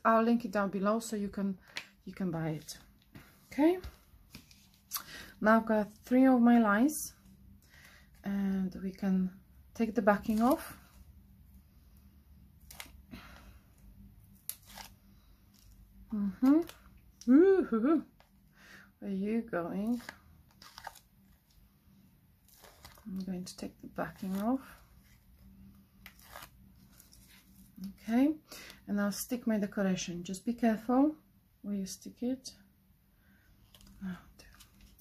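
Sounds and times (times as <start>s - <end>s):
sticky tape rustling: 10.1s - 10.8s, 14.3s - 17.3s, 19.8s - 21.6s, 22.4s - 25.2s, 26.0s - 27.9s
liner peeled off adhesive tape: 14.4s - 15.7s.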